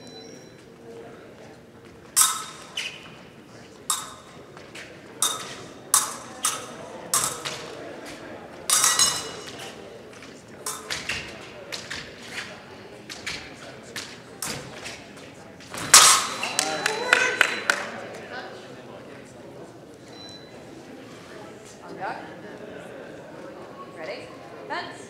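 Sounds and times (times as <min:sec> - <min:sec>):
steel blades clashing: 0:02.2 - 0:02.8, 0:03.9 - 0:04.4, 0:05.2 - 0:07.6, 0:08.7 - 0:09.6, 0:15.9 - 0:16.5.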